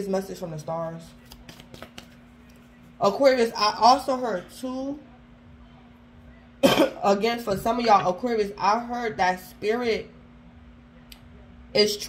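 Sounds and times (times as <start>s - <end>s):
faint steady hum: 0.0s - 12.0s
person clearing throat: 6.6s - 7.0s.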